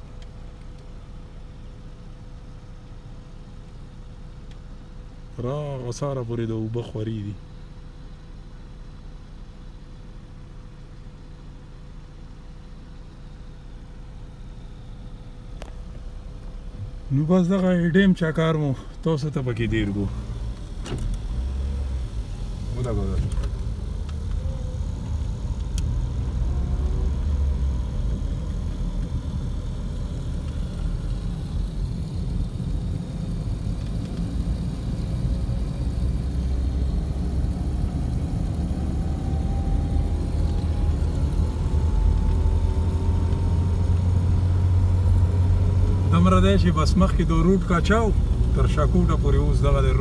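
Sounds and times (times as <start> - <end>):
road and engine rumble: 0.0 - 50.0
faint rising whine: 10.8 - 50.0.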